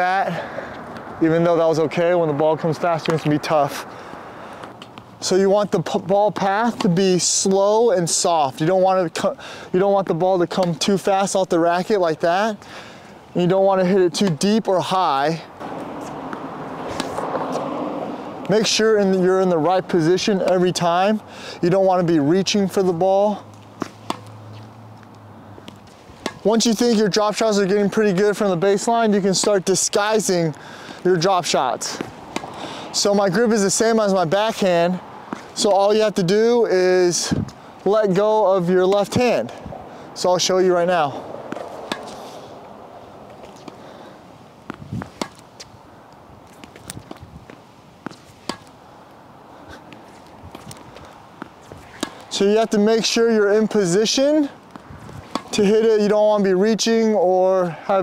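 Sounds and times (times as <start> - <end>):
steady low hiss: 0.0 - 57.7
tennis racket hitting ball: 5.9 - 7.4, 15.6 - 18.8, 23.6 - 24.6, 25.6 - 27.5, 31.8 - 32.6, 35.2 - 35.7, 41.4 - 43.8, 44.6 - 45.7, 46.4 - 48.8, 49.8 - 53.2, 53.8 - 55.7.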